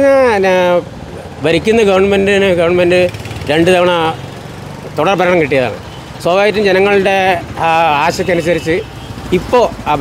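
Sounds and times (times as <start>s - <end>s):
low engine hum of vehicles: 0.0s - 10.0s.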